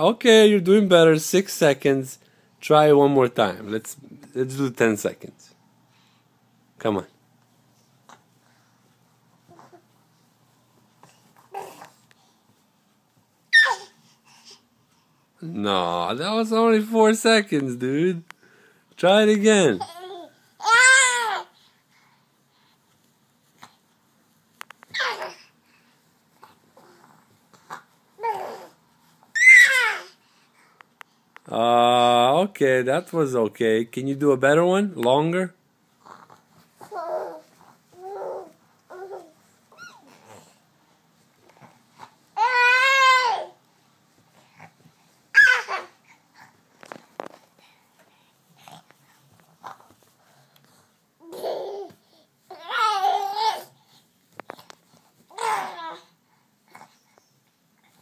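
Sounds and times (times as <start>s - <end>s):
baby babbling: 11.5s - 11.9s, 13.6s - 14.0s, 19.8s - 21.5s, 24.9s - 25.5s, 27.7s - 28.8s, 29.4s - 30.2s, 36.8s - 40.5s, 42.4s - 43.6s, 45.4s - 45.9s, 51.2s - 53.8s, 55.3s - 56.1s
baby squealing: 13.5s - 14.0s, 19.8s - 21.4s, 24.9s - 25.4s, 29.3s - 30.1s, 38.0s - 40.2s, 45.3s - 45.9s.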